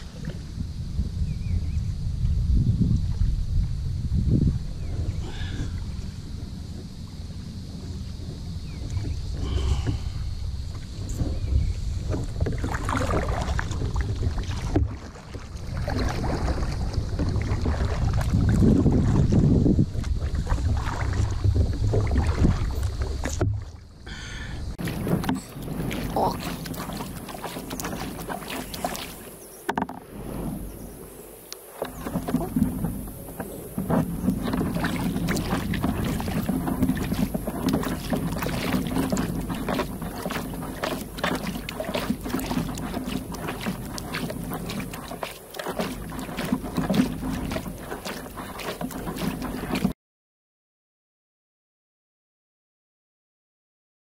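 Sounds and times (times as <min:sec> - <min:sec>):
wind buffeting microphone: 0:00.0 - 0:23.7, 0:24.6 - 0:49.9
water splashing against hull: 0:02.2 - 0:50.0
paddle strokes dipping and dripping: 0:04.8 - 0:50.0.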